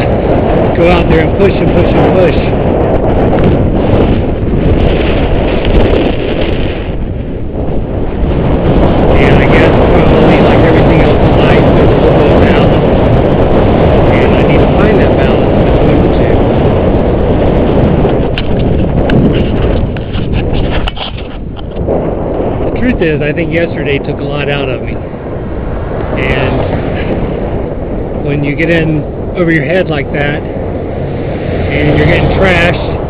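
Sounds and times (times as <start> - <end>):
wind buffeting on microphone: 0.0 - 33.0.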